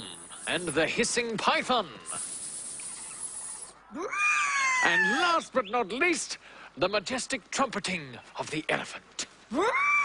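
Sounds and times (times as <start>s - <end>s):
person hissing like a snake: 2.1s - 3.8s.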